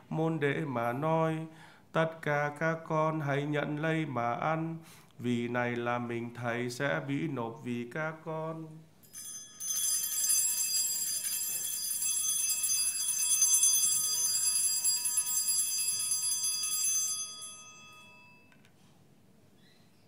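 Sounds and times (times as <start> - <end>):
altar bells ringing: 9.0 - 18.6.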